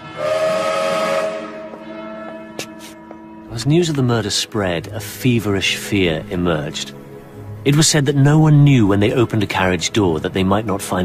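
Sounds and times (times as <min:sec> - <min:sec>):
steam locomotive whistle: 0:00.0 - 0:03.0.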